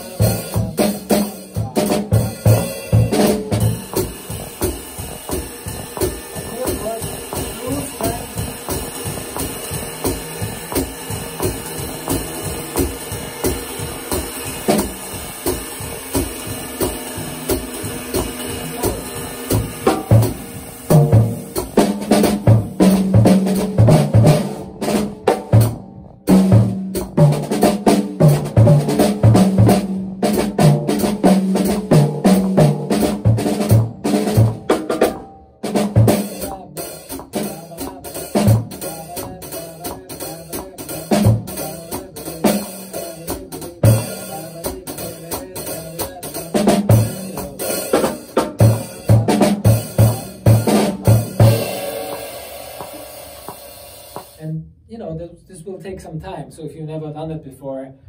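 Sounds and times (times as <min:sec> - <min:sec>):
ride cymbal: 0:00.0 - 0:23.8, 0:36.2 - 0:54.4
snare tom and bass drum hits: 0:00.0 - 0:54.4.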